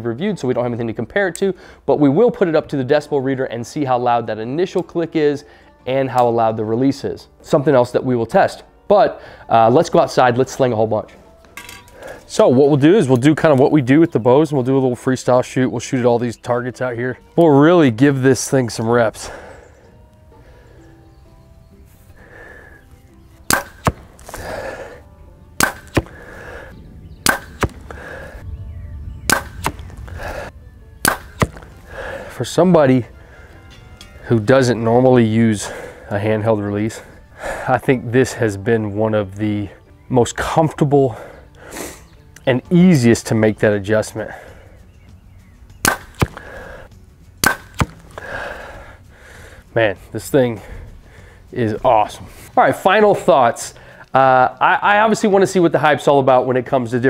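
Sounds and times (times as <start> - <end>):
faint music: 0.0 - 57.0
bow shot crack: 23.4 - 24.5, 25.6 - 26.3, 27.2 - 28.0, 29.2 - 31.9, 45.8 - 46.6, 47.4 - 48.2
arrow striking foam target: 23.5 - 24.3, 25.6 - 26.2, 27.2 - 27.9, 29.3 - 30.0, 31.0 - 31.7, 45.8 - 46.4, 47.4 - 48.2.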